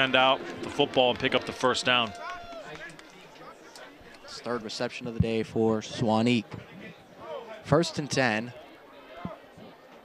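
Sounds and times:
stadium ambience: 0.0 - 10.0.

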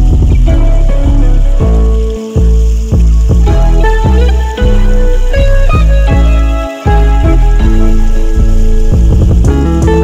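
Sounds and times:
rushing water hiss: 0.0 - 10.0
sustained background music: 0.0 - 10.0.

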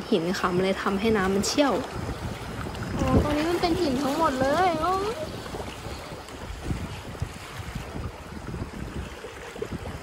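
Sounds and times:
river current rushing: 0.0 - 10.0
wind buffeting microphone: 0.0 - 10.0.

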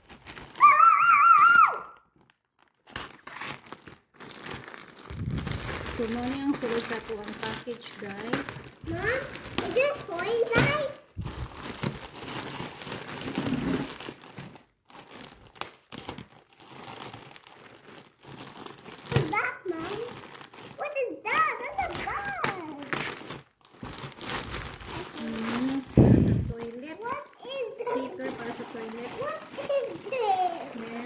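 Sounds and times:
plastic mailer bag crinkling: 0.0 - 1.1, 2.0 - 31.0
children and adults talking: 25.1 - 31.0.

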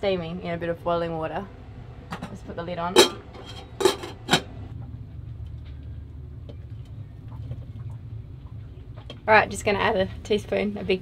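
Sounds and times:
steady low hum: 0.0 - 11.0
metal lid clanking onto pot: 2.1 - 4.6.

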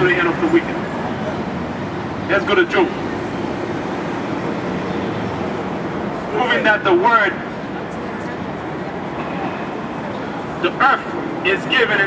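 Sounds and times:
traffic roar: 0.0 - 12.0.

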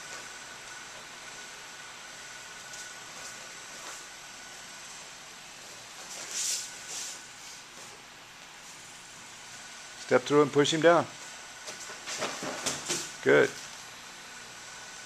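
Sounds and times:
background hiss: 0.0 - 15.0.

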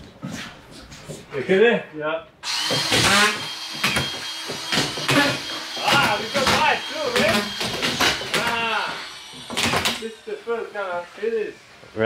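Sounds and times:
men talking: 1.3 - 2.3, 5.1 - 9.2, 9.9 - 12.0.

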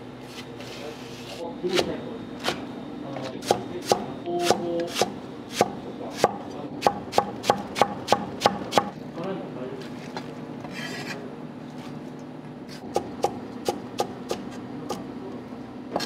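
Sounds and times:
cleaver chopping on cutting board: 3.4 - 8.9.

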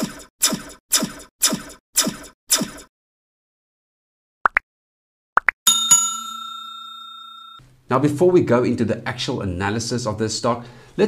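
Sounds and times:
notification ding: 5.7 - 7.6.

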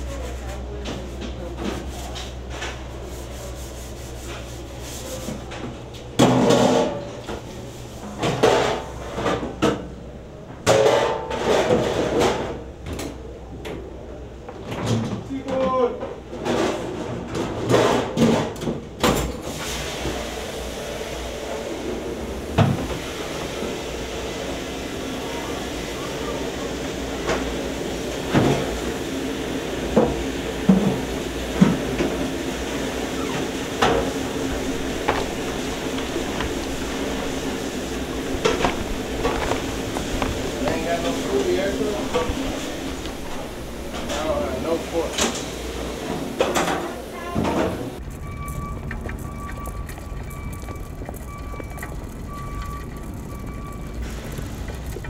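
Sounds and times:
dish room hum: 0.0 - 55.0
person talking: 40.5 - 42.6.

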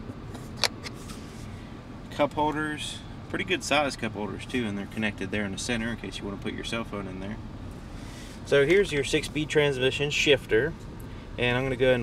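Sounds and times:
low cabin hum: 0.0 - 12.0.

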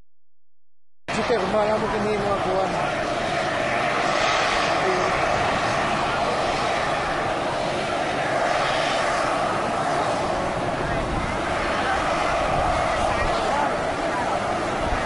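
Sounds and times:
hot spring boiling: 1.1 - 15.0
steam venting from geyser: 1.1 - 15.0.

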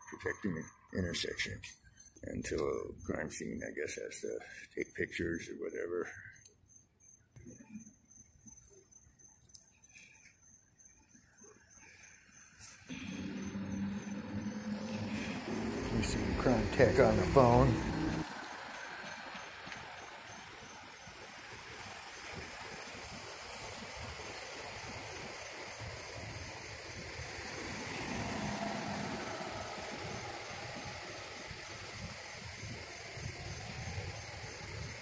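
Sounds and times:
street traffic noise: 12.5 - 35.0.

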